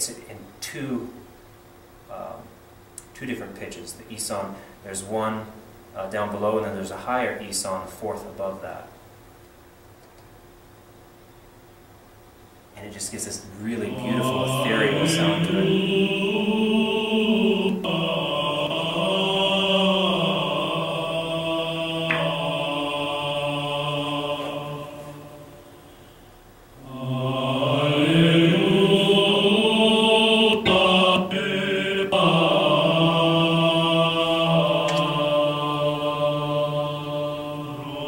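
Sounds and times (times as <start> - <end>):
sustained vocal drone: 12.8 - 38.0
chant melody: 13.4 - 26.2, 26.8 - 38.0.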